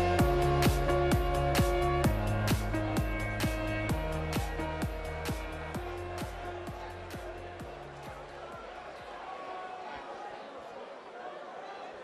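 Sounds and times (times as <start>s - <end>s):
electronic music with beat: 0.0s - 8.8s
murmur of crowd: 0.0s - 12.0s.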